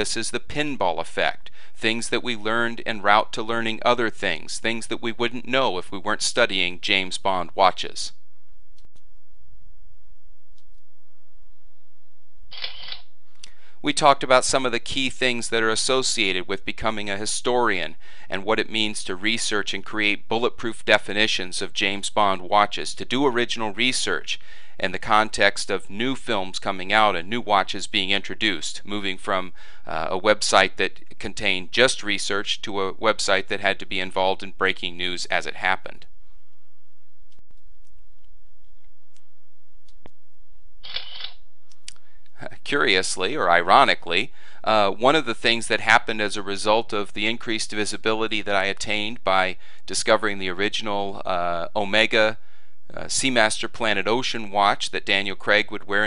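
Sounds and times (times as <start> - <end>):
person speaking: 0.0 - 8.1, 12.6 - 36.1, 40.8 - 56.0
steady low hum: 0.0 - 56.0
rasping camera shutter: 12.5 - 13.1, 40.8 - 41.4
mouth clicks: 41.7 - 42.1.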